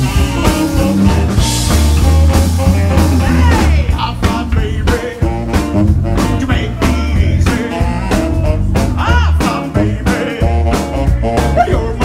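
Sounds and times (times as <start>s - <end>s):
drum hits: 0.0s - 12.0s
person singing: 0.0s - 12.0s
rockabilly band playing: 0.0s - 12.0s
saxophone: 0.0s - 12.0s.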